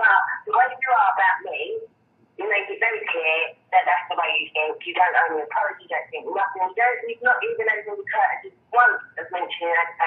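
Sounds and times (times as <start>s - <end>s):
speech over telephone line: 0.0s - 10.0s.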